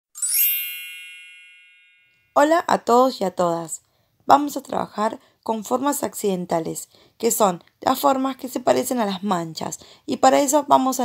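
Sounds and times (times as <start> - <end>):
bright chime ringing: 0.1 - 2.4.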